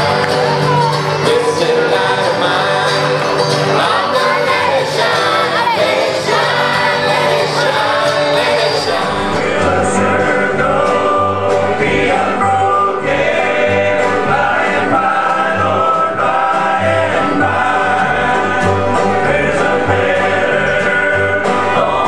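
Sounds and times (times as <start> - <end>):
pulsing bass notes: 0.0 - 22.0
string band playing: 0.0 - 22.0
voices singing together: 0.0 - 22.0.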